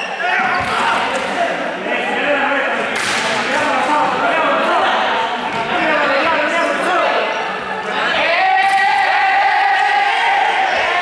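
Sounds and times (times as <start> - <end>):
young people talking and calling out: 0.0 - 11.0
sharp crack: 3.0 - 3.7.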